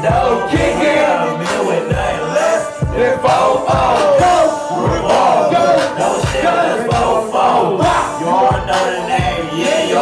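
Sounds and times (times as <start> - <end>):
loud backing beat: 0.0 - 10.0
people rapping into microphones: 0.0 - 10.0
heavy kick drum thumping: 2.8 - 5.1.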